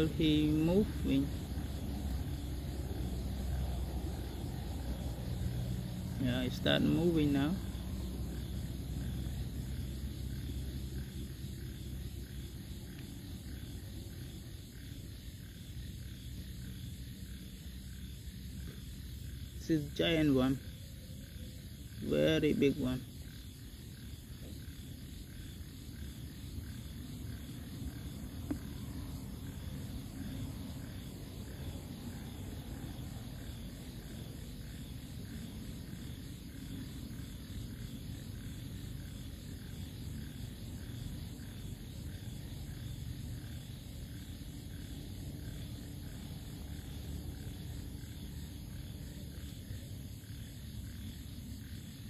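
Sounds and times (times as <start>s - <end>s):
night insects calling: 0.0s - 52.0s.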